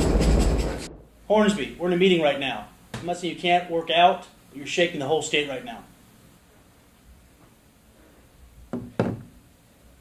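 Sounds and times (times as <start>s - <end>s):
object knocking on wooden table: 8.7s - 9.3s.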